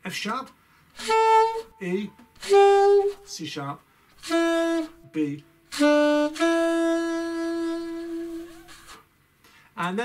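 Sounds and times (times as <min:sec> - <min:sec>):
alto saxophone playing: 0:01.0 - 0:03.4, 0:04.2 - 0:09.0.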